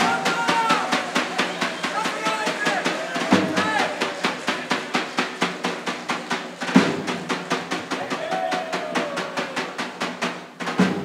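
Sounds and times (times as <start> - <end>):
large folk drum beaten fast: 0.0 - 11.0.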